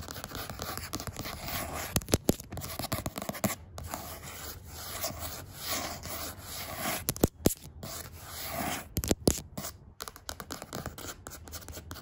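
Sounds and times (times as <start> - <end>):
fingernails scratching a sign: 0.0 - 9.7.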